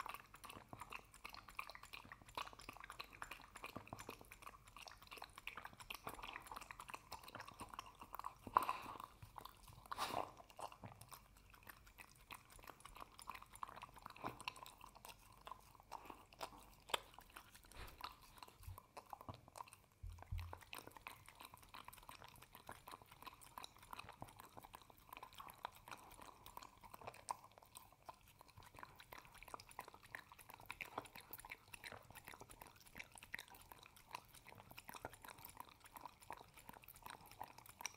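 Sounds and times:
dog lapping food: 0.0 - 37.9.

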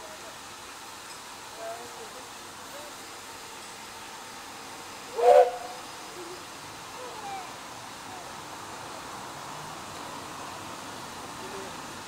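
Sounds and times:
outdoor background noise: 0.0 - 12.0
steam locomotive whistle: 5.1 - 5.8.

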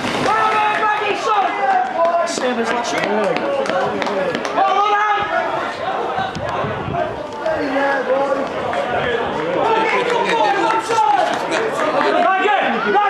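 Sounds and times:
voices shouting and chattering: 0.0 - 13.0.

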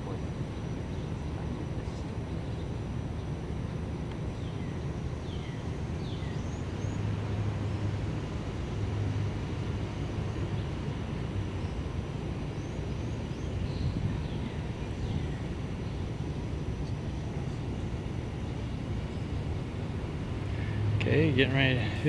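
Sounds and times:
distant traffic rumble: 0.0 - 22.0.

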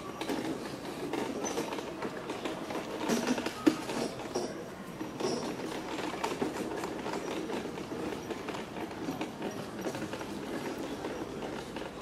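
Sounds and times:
wheelchair rolling over cobblestones: 0.0 - 12.0.

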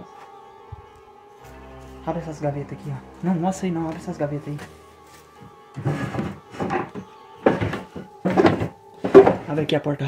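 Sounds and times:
background music: 0.0 - 10.0
wooden drawers scraping: 5.8 - 9.6.

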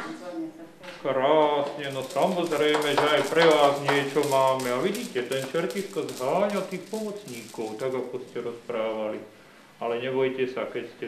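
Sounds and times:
man talking in a low voice: 1.0 - 11.0.

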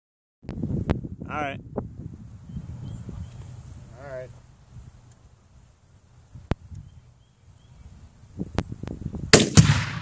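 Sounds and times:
explosive target boom: 9.3 - 10.0
rifle shot: 9.3 - 10.0.

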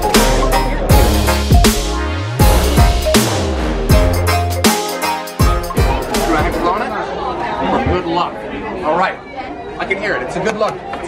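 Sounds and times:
background chatter of voices: 5.5 - 11.0.

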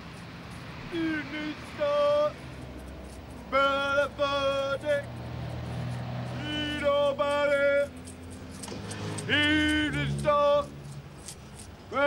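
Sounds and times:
street traffic rumble: 0.0 - 12.0
man's street cry: 0.9 - 2.4.

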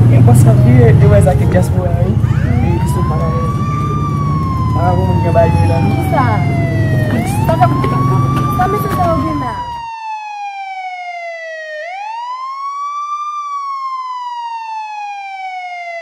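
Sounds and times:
person speaking: 0.0 - 3.6
street noise: 0.0 - 9.8
wailing siren: 0.0 - 16.0.

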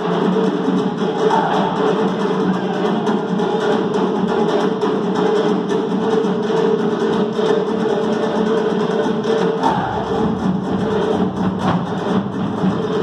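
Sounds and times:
frame drums fast rhythm: 0.0 - 13.0
deeper drum: 9.6 - 13.0.

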